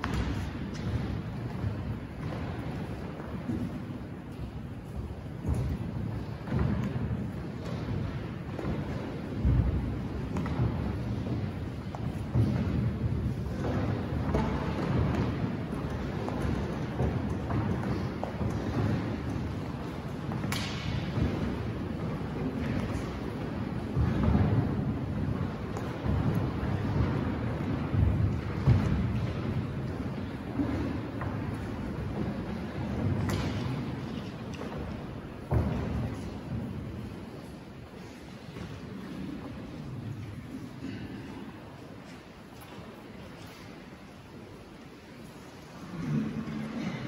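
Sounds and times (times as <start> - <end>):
people walking on hard floor: 0.0 - 47.0.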